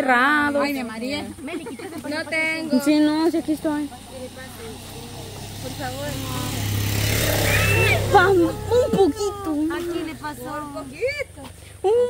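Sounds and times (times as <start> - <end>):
motorcycle passing by: 0.0 - 11.8.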